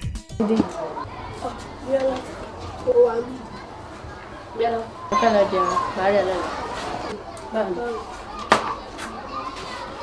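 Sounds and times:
children's voices: 0.4s - 10.0s.

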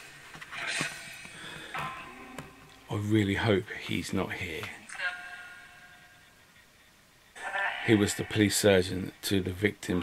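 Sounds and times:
person speaking: 1.8s - 5.4s, 7.4s - 10.0s.

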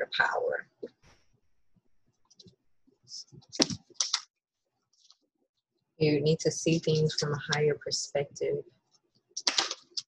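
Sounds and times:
cards shuffling: 3.5s - 4.3s, 9.4s - 10.0s.

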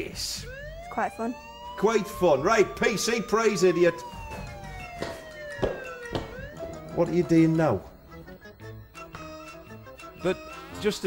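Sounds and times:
siren winding down: 0.0s - 8.0s.

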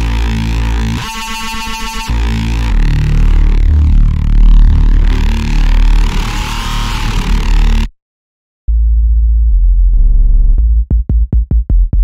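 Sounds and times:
bright buzzy synth note: 0.0s - 7.9s
deep synth bass note: 0.0s - 7.9s, 8.7s - 11.1s.

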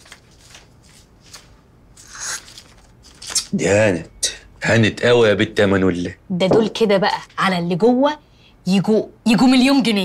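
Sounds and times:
crisp paper flicks: 0.0s - 3.5s
banknotes rustling: 0.0s - 3.6s.

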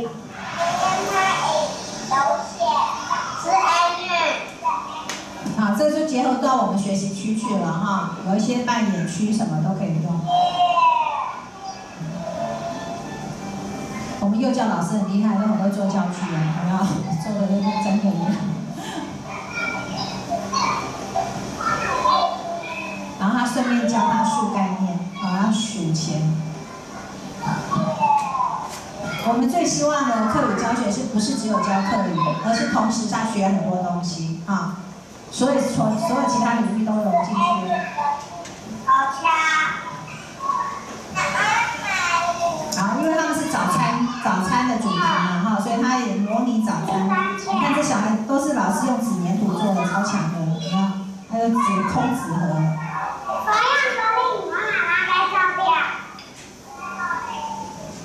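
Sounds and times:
faint background music: 0.0s - 58.0s
room hum: 0.0s - 58.0s
young children speaking and calling out: 0.3s - 5.3s, 10.2s - 12.9s, 19.2s - 25.6s, 26.6s - 33.1s, 35.8s - 45.6s, 46.9s - 58.0s.

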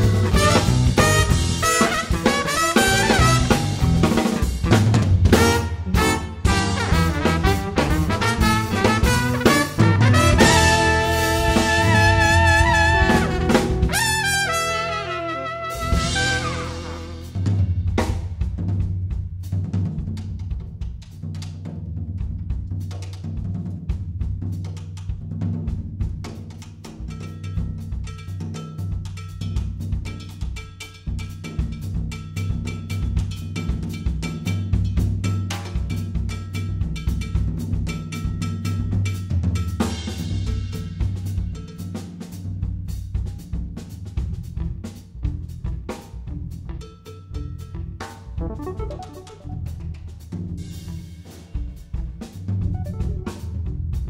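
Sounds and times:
electric bass line: 0.0s - 1.8s, 2.8s - 14.6s, 48.4s - 50.2s, 52.6s - 54.0s
drum kit snare and bass drum: 0.0s - 46.6s, 48.0s - 54.0s
faint keyboard chords: 48.4s - 49.9s, 52.7s - 53.8s.

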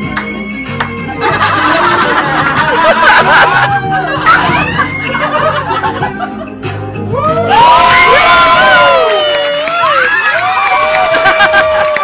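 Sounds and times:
audience laughter: 1.1s - 6.6s.

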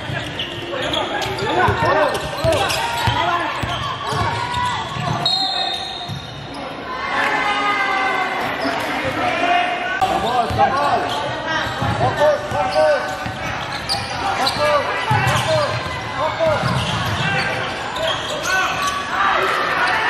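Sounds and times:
players calling out: 0.0s - 20.0s.

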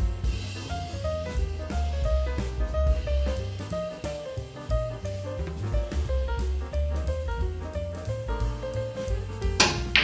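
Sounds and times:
jazz music with bass and drums: 0.0s - 10.0s
billiard balls clicking: 9.5s - 10.0s
cue striking ball: 9.6s - 10.0s.

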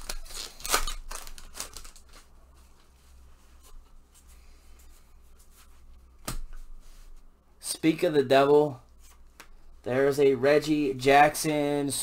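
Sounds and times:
wrapper crinkling and tearing: 0.0s - 2.3s.

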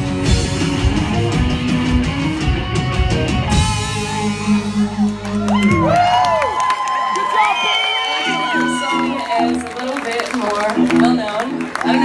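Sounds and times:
rock band playing: 0.0s - 12.0s
audience cheering and whooping: 3.9s - 10.6s, 11.7s - 12.0s.

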